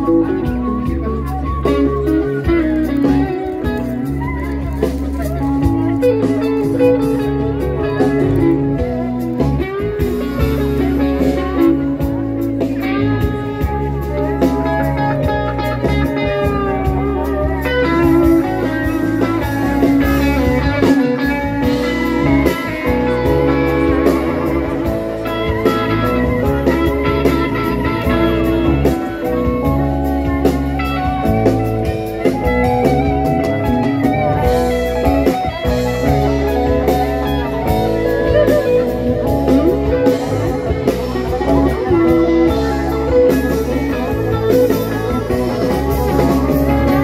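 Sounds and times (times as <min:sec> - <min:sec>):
bass guitar: 0:00.0 - 0:47.0
drums: 0:00.0 - 0:47.0
electric guitar: 0:00.0 - 0:47.0
live rock band playing: 0:00.0 - 0:47.0.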